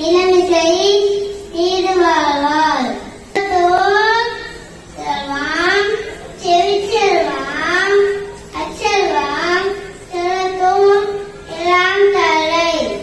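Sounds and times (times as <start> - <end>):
child chanting in sing-song melody: 0.0 - 13.0.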